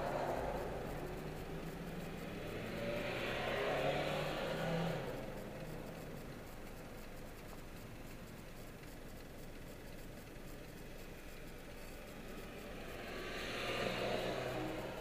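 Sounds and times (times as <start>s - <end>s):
car engine and road noise inside: 0.0s - 15.0s.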